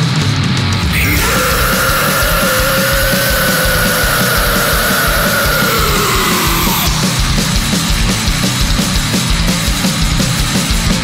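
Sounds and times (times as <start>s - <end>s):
fast dense drumming: 0.0s - 11.0s
death metal long held note: 0.8s - 8.3s.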